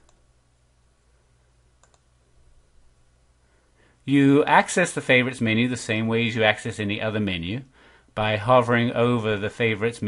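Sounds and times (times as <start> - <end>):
low steady hum: 0.0 - 10.0
faint click: 1.8 - 2.1.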